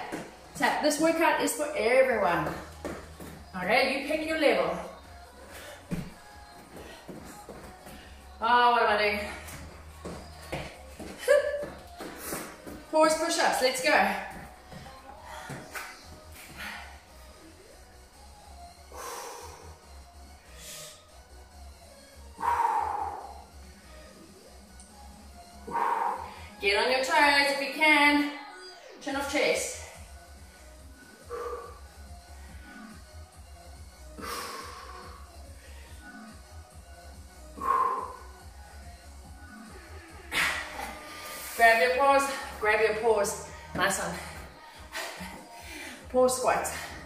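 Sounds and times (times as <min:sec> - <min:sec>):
faint music with pulsing bass: 0:00.0 - 0:47.0
woman speaking: 0:41.6 - 0:44.3.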